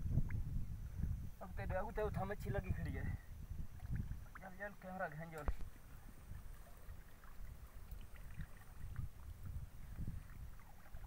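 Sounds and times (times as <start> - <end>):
water lapping around wader: 2.9 - 11.0
small drips and splashes: 3.6 - 11.0.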